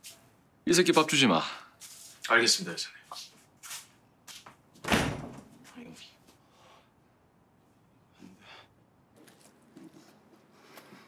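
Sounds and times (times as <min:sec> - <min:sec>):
door slamming shut: 0:04.8 - 0:05.5.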